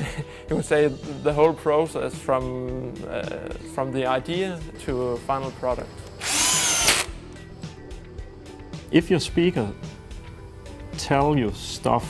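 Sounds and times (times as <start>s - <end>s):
electric screwdriver whine: 6.1s - 7.2s.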